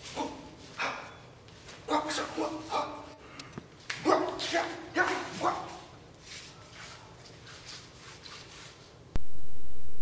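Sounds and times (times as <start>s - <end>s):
man shouting martial-arts yells: 1.9s - 3.1s, 4.0s - 5.9s.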